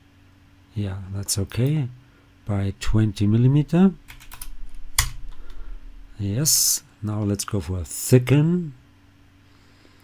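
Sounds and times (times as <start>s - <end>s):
computer keyboard typing: 4.1s - 5.2s.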